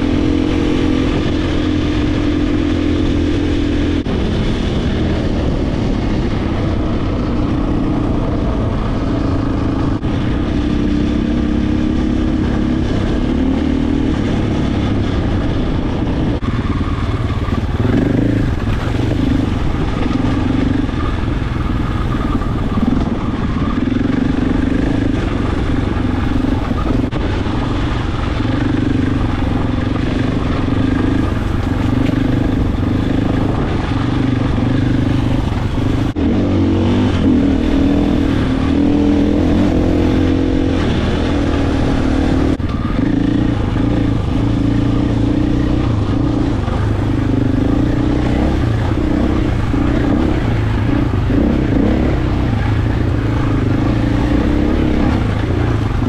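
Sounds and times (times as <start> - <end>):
motorcycle engine running: 0.0 - 56.0.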